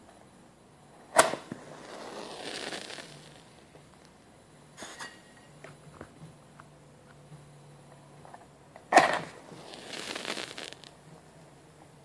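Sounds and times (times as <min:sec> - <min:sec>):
wooden match striking: 0:01.2 - 0:03.3, 0:08.9 - 0:10.9.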